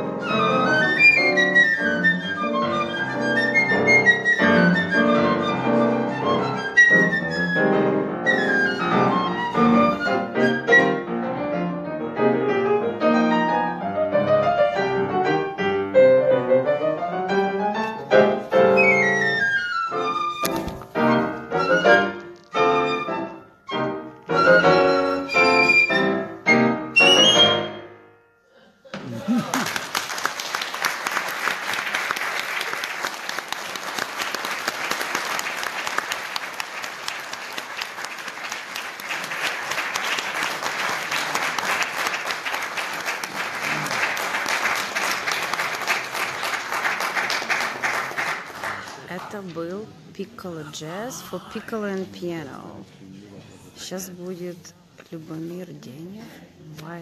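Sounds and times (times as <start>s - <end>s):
chamber music with piano: 0.0s - 28.6s
audience applause: 29.0s - 49.2s.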